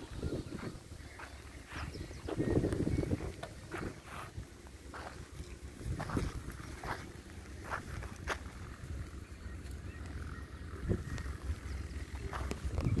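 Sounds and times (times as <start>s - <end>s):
wind on microphone: 0.0s - 5.1s, 5.7s - 7.0s, 10.7s - 13.0s
footsteps crunching on soil: 0.0s - 10.2s, 10.8s - 13.0s.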